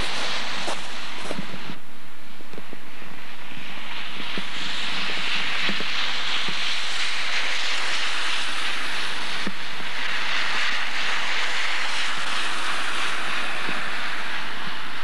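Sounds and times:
car tyres hissing on wet road: 0.0s - 1.7s, 4.6s - 15.0s.

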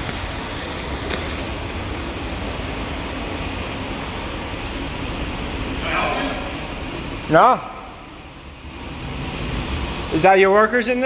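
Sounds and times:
low rumble in parking garage: 0.0s - 11.0s.

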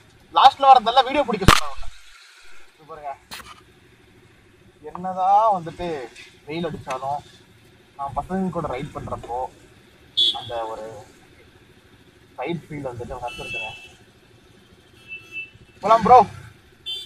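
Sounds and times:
motorcycle engine idling: 0.0s - 1.5s, 2.6s - 17.0s
men talking: 0.3s - 1.9s, 2.8s - 3.3s, 4.8s - 9.6s, 10.3s - 11.4s, 12.3s - 14.0s, 15.8s - 16.4s.

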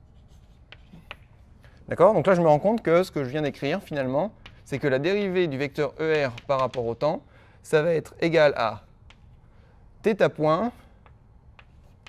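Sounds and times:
chalk scratching on blackboard: 0.0s - 1.3s.

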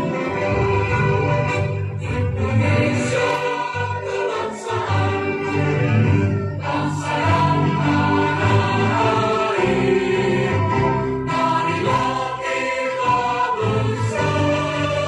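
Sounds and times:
choir singing: 0.0s - 15.0s
instrumental accompaniment: 0.0s - 15.0s.

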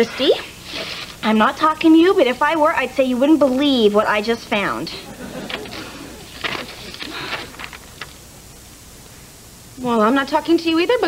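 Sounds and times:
girl speaking: 0.0s - 0.6s, 1.2s - 5.0s
faint hiss: 0.0s - 11.0s.

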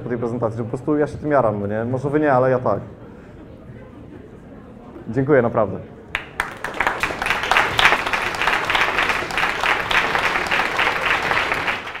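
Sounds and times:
audience applauding: 6.1s - 12.0s.

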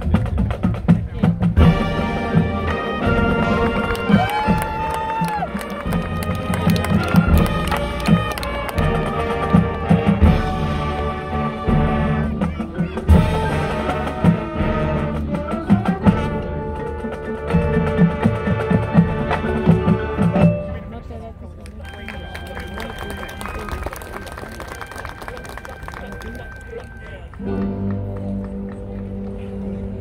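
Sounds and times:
drumline hits: 0.0s - 20.9s
marching band playing: 0.0s - 30.0s.

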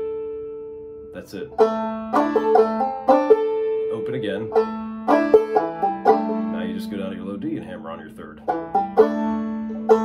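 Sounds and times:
banjo plucked notes: 0.0s - 10.0s.

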